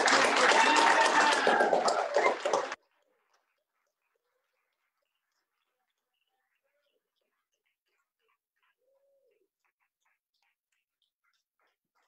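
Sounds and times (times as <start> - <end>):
applause: 0.0 - 2.8
voices: 0.0 - 9.6.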